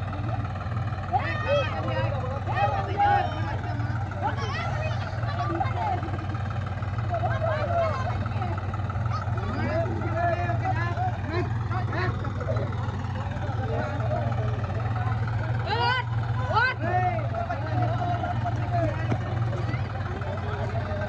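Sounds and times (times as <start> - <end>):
people talking and calling out: 0.0 - 21.0
tractor diesel engine droning: 0.0 - 21.0.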